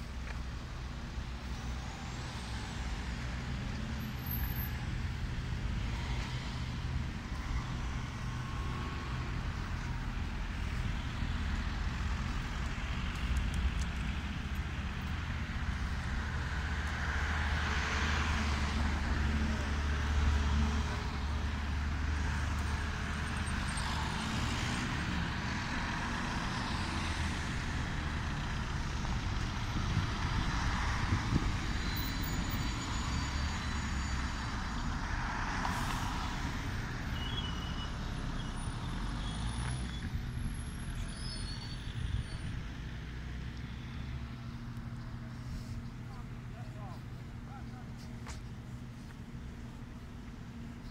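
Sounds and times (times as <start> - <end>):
low traffic rumble: 0.0 - 50.9
vehicles passing: 0.0 - 50.9.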